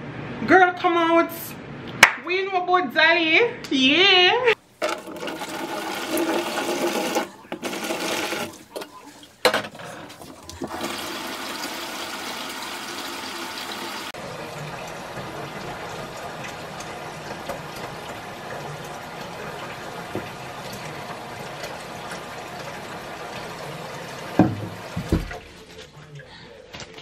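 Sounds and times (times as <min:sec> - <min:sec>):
faucet running into basin: 0:04.8 - 0:09.3, 0:10.0 - 0:25.6
water pouring into plastic basin: 0:04.9 - 0:09.4, 0:10.2 - 0:25.8.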